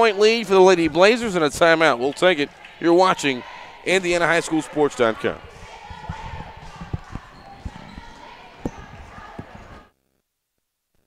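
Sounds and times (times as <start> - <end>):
crowd chatter: 0.0 - 9.9.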